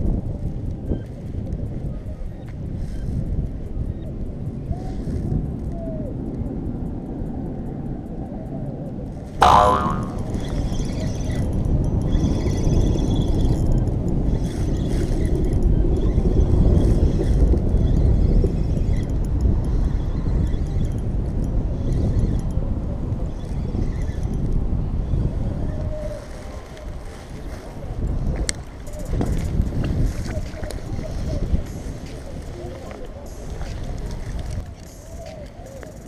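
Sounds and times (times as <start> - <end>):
wind noise on microphone: 0.0 - 36.0
sudden loud twang: 9.4 - 10.3
fishing reel whirring: 9.5 - 10.4.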